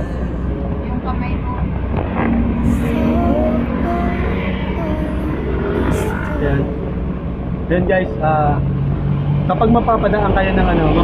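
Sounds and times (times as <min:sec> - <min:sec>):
person speaking: 0:00.0 - 0:00.6, 0:02.7 - 0:06.9
vehicle engine hum from cabin: 0:00.0 - 0:11.0.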